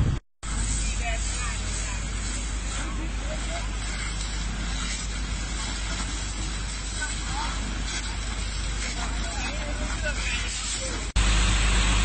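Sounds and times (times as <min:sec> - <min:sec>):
wind on microphone: 0:00.0 - 0:00.2
fire hose water spraying: 0:00.0 - 0:12.0
voices: 0:00.5 - 0:11.1.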